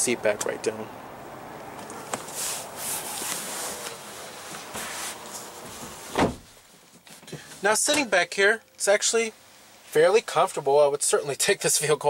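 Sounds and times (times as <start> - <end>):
rustling of car seat and trim: 1.8 - 8.1
sharp thump: 6.1 - 6.5.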